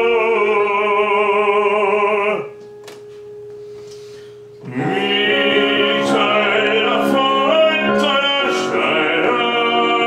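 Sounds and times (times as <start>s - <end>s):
piano chords: 0.0s - 10.0s
held digital piano note: 2.5s - 10.0s
operatic singing: 4.6s - 10.0s.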